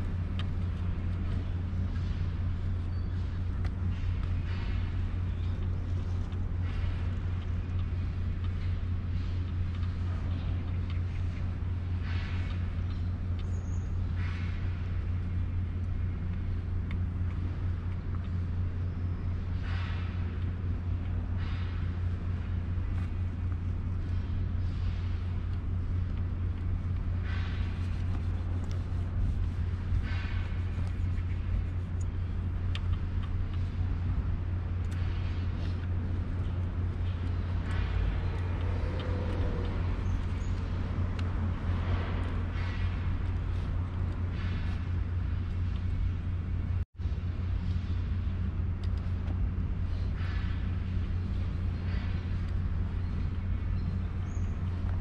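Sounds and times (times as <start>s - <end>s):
steady low rumble: 0.0s - 55.0s
cloth rag rubbing bike frame: 27.7s - 32.0s.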